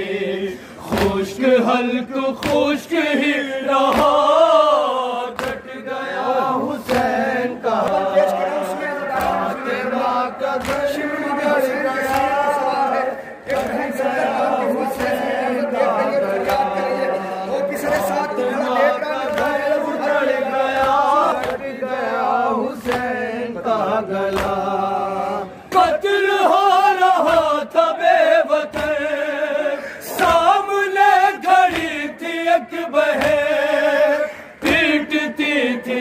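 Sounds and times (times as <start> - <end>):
chorus singing: 0.0 - 36.0
men chanting in unison: 0.0 - 36.0
hands slapping chests: 2.3 - 2.8, 3.8 - 4.2, 5.3 - 5.8, 6.8 - 7.2, 10.5 - 11.1, 11.9 - 12.4, 20.7 - 21.7, 22.8 - 23.2, 24.3 - 24.7, 31.6 - 32.0, 33.1 - 33.5.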